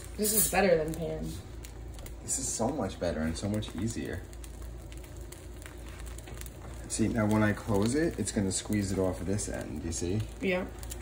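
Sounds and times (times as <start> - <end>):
eggs sizzling on a grill: 0.0 - 11.0
low hum: 0.0 - 11.0.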